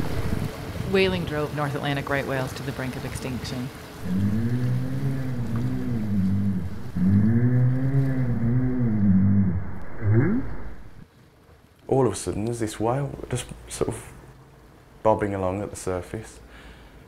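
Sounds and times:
whale long calls: 0:04.0 - 0:11.0
whale rising up-call: 0:04.0 - 0:11.0.

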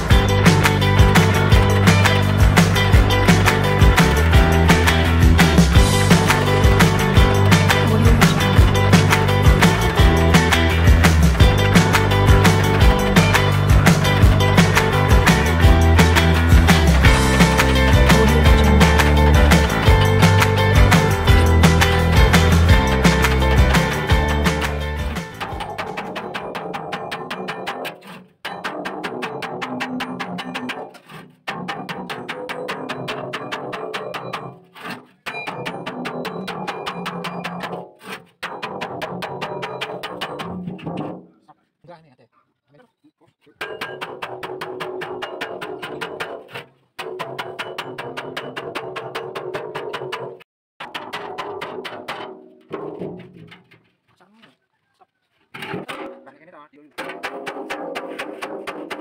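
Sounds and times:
music: 0:00.0 - 0:34.7, 0:35.3 - 0:37.9, 0:38.5 - 0:41.2.

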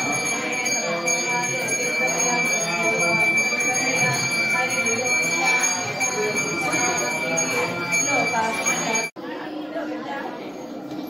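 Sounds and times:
temple bells ringing: 0:00.0 - 0:09.2.

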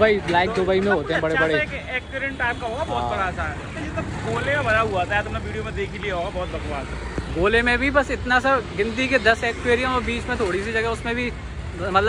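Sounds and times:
men talking: 0:00.0 - 0:12.0
road traffic noise: 0:00.0 - 0:12.0.

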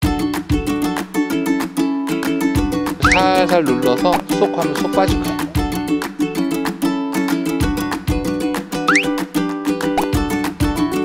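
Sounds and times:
upbeat music with plucked strings: 0:00.0 - 0:11.0.

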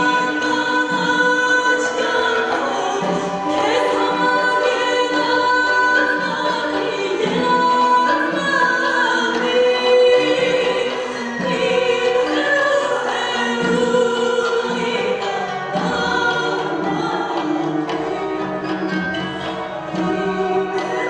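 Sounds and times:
woman singing a folk song: 0:00.0 - 0:18.4, 0:19.8 - 0:21.0
folk instrument ensemble: 0:00.0 - 0:21.0.

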